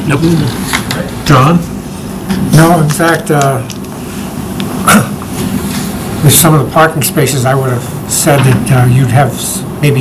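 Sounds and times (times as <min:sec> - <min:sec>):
low room hum: 0:00.0 - 0:10.0
man clearing throat: 0:04.8 - 0:05.3.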